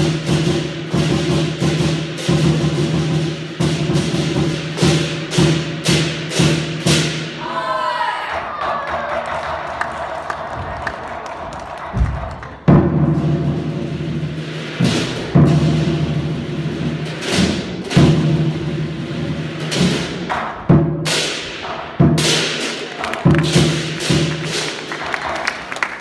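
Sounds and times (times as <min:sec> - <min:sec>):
large drum beats: 0:00.0 - 0:07.4, 0:11.8 - 0:25.4
applause: 0:08.7 - 0:12.7, 0:22.8 - 0:26.0.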